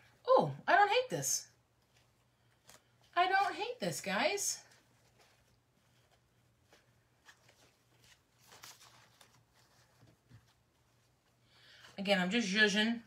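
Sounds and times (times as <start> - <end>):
fabric ribbon rustling: 1.6 - 12.6.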